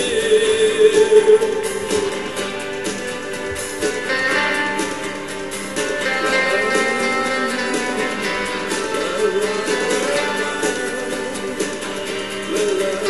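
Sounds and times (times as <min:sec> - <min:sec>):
strummed acoustic guitar: 0:00.0 - 0:13.0.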